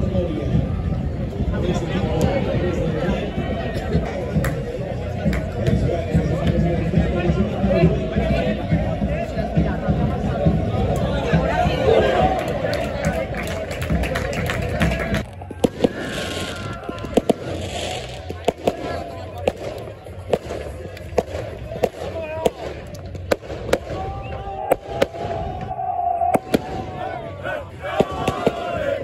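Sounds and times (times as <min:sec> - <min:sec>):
crowd noise: 0:00.0 - 0:29.0
men shouting and cheering: 0:08.1 - 0:18.1, 0:23.9 - 0:29.0
firecracker bangs: 0:28.0 - 0:28.8.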